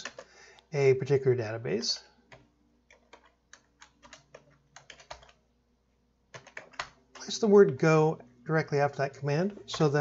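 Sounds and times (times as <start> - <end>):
typing on a keyboard: 0.0 - 0.3, 2.3 - 5.4, 6.3 - 7.3.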